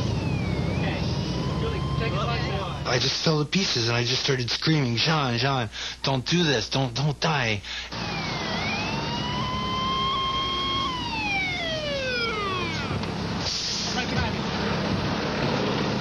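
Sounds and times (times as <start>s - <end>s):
fire truck siren wailing: 0.0s - 3.0s, 7.9s - 13.5s
truck engine droning: 0.0s - 3.1s, 7.9s - 16.0s
short hiss: 13.4s - 14.0s.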